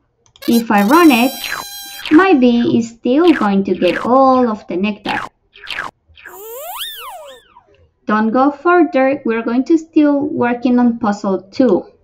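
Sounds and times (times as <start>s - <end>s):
cartoon whistling glide: 0.4s - 2.3s, 6.3s - 7.6s.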